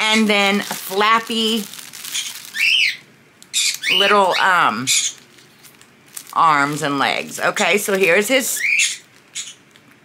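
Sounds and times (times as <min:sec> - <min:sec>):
toy rustling: 0:00.0 - 0:03.0.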